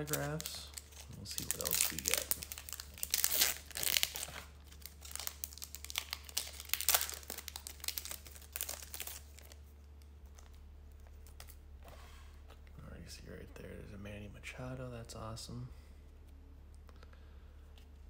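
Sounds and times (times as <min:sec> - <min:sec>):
foil wrapper tearing and crinkling: 0:00.0 - 0:09.6.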